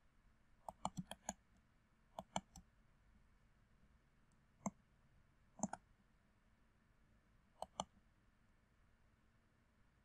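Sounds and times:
computer mouse button clicks: 0.7s - 1.4s, 2.2s - 2.6s, 5.6s - 5.8s, 7.6s - 7.9s.

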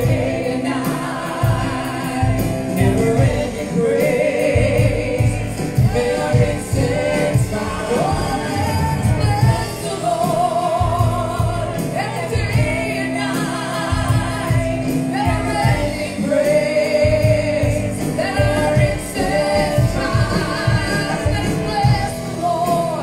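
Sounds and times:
keyboard accompaniment with beat: 0.0s - 23.0s
woman singing with vibrato: 0.0s - 23.0s.

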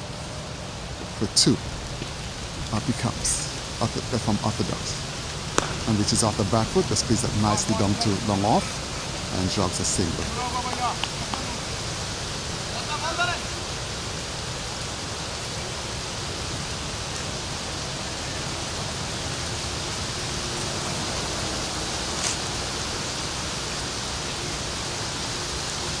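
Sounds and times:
wind rumbling on microphone: 0.0s - 12.8s.

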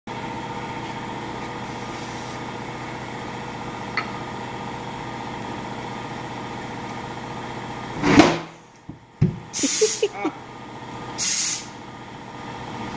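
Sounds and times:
steady machine hum: 0.1s - 12.9s.

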